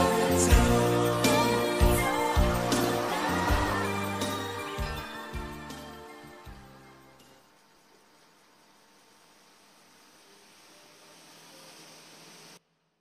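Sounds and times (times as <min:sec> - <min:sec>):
karaoke backing track: 0:00.0 - 0:05.6
faint steady hiss: 0:04.1 - 0:13.0.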